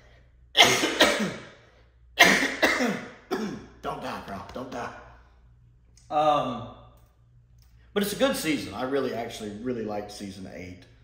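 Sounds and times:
man coughing hard: 0.6s - 1.6s, 2.2s - 3.8s.

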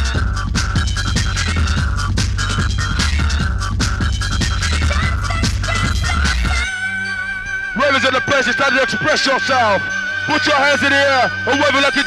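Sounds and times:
deep heavy bass line: 0.0s - 6.7s
fast breakbeat drums: 0.0s - 6.7s.

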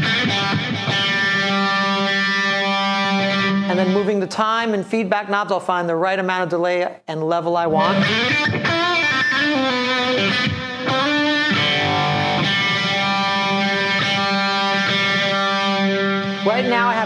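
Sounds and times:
electric guitar with delay: 0.0s - 4.3s, 7.7s - 17.0s.

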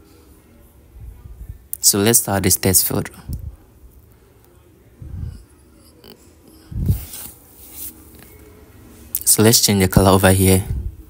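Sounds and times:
breath puffs on microphone: 6.6s - 7.9s.

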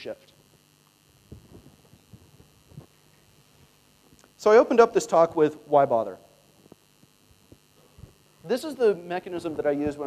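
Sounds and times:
faint steady hum: 0.0s - 10.0s
man speaking: 8.4s - 10.0s.

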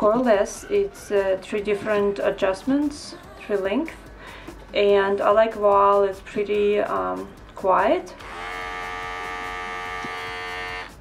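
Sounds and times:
electric clipper buzzing: 8.2s - 11.0s.

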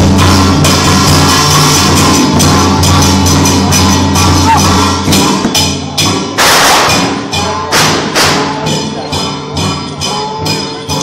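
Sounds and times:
cymbal crashes: 0.0s - 10.6s
drum beating: 0.0s - 11.0s.

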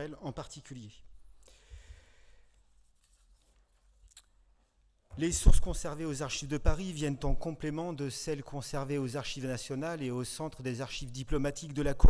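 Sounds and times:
man breathing into microphone: 1.4s - 2.7s.

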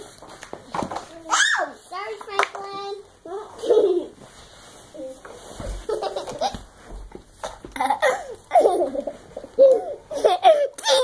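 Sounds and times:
young child giggling: 7.8s - 11.0s.

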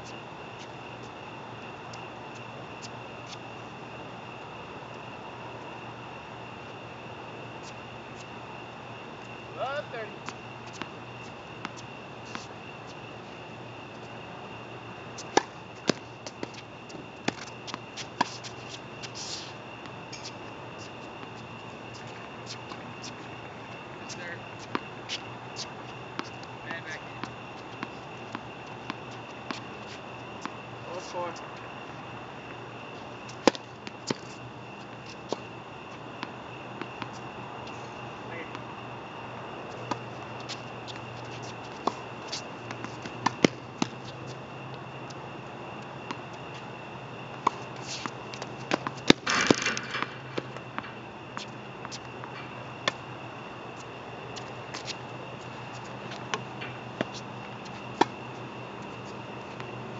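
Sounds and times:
steady high whine: 0.0s - 59.9s
steady low hum: 0.0s - 59.9s
tennis ball bouncing on hard court: 33.4s - 34.3s, 47.3s - 53.0s.

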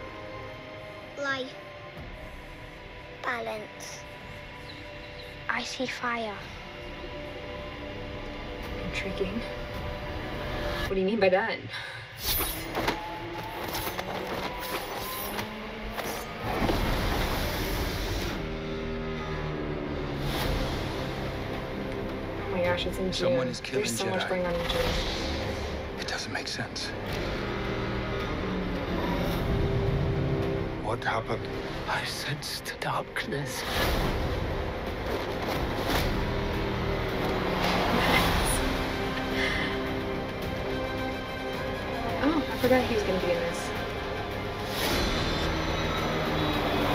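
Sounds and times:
trailer music: 0.0s - 46.9s.

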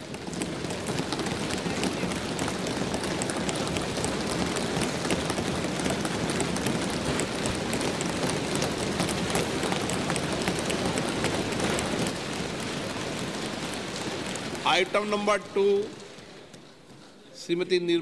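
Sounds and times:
hands thumping wooden desks: 0.0s - 15.2s.

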